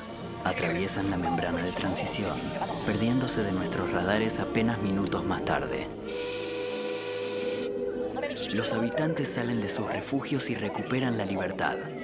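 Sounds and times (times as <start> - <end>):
held whistle-like tone: 6.1 - 7.7.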